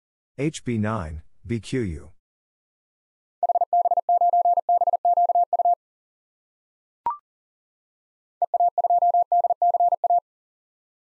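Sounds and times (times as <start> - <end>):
morse code beeps: 3.4 - 5.8, 8.4 - 10.2.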